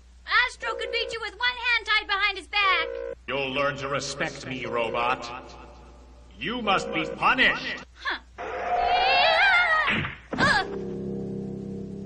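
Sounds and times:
cartoon girl screaming: 8.4s - 10.7s.

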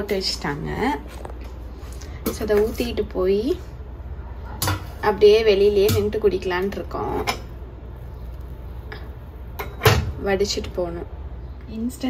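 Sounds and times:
milk boiling in a saucepan: 2.8s - 10.6s.

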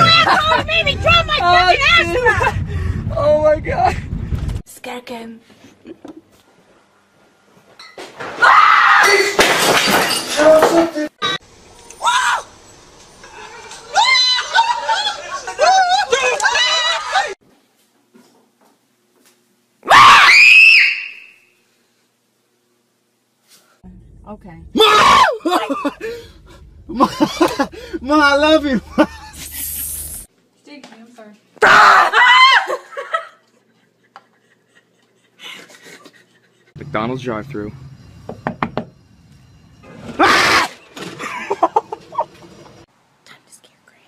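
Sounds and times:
person screaming in fright: 19.9s - 21.1s, 24.8s - 27.2s, 31.6s - 32.8s, 40.2s - 40.7s.

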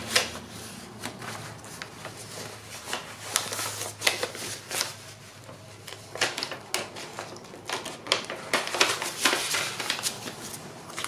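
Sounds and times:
paper and plastic rustling: 0.0s - 11.0s.

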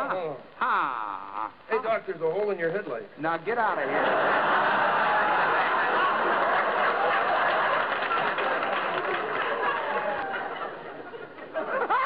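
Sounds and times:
studio audience laughing: 3.8s - 12.0s.

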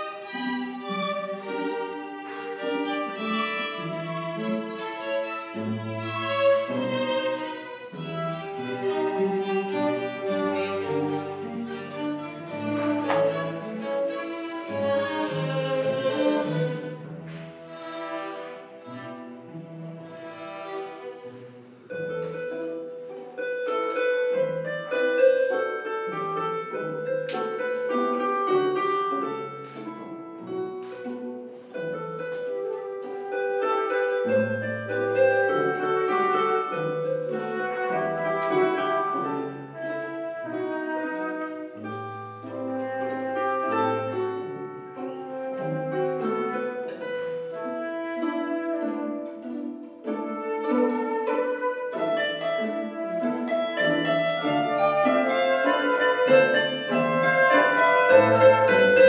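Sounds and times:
bowed strings playing: 0.0s - 59.0s
plucked psaltery notes: 0.0s - 59.0s.

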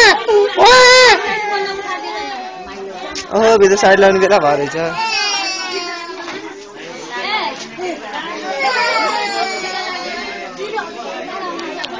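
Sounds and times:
people chattering and calling out: 0.0s - 11.9s.

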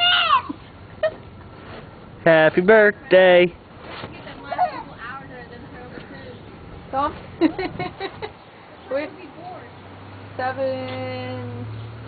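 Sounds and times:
toddler whining cry: 0.0s - 0.6s.

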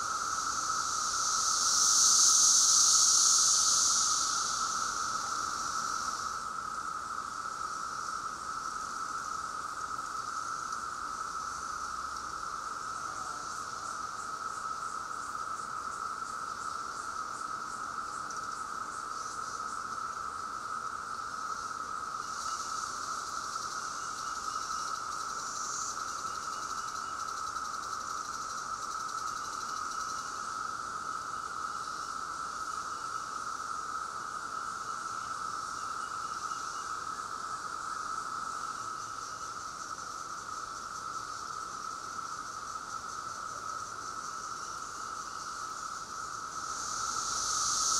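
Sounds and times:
cicadas droning whine: 0.0s - 47.9s.

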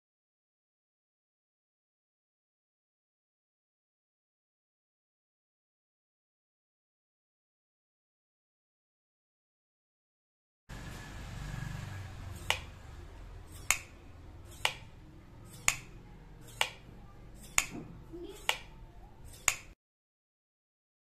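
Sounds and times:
wall switch clicking: 12.4s - 12.8s, 13.6s - 14.0s, 14.6s - 14.9s, 15.6s - 15.9s, 16.6s - 16.9s, 17.6s - 17.8s, 18.4s - 18.8s.

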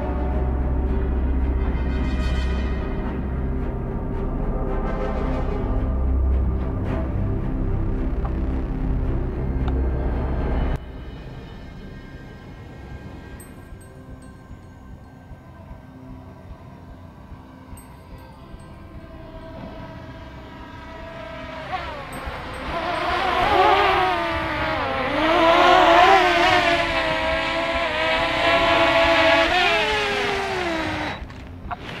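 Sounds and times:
drone propellers whining: 18.3s - 32.0s.

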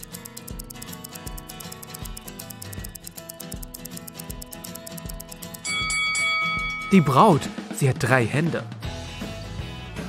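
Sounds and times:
rapid clock ticking: 0.0s - 7.2s
background music: 0.0s - 10.0s
bell chime: 5.6s - 7.5s.

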